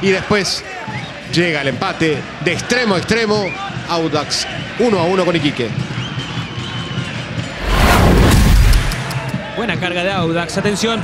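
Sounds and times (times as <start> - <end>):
deep boom: 7.6 - 9.4
rushing whoosh: 7.6 - 9.4.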